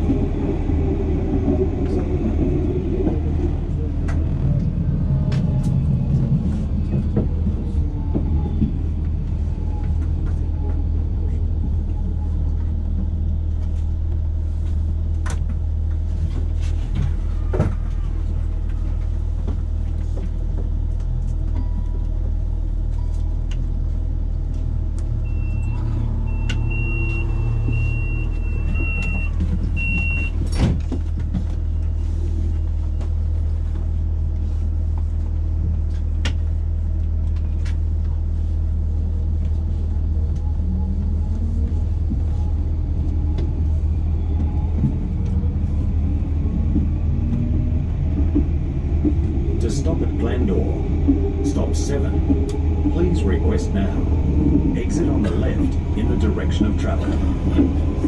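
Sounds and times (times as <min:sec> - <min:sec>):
tram drive whine: 0:00.0 - 0:58.0
tram low hum: 0:00.0 - 0:58.0.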